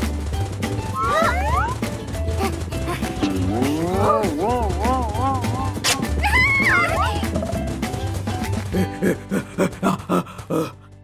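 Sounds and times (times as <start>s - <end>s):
cartoon music with bass line: 0.0s - 11.0s.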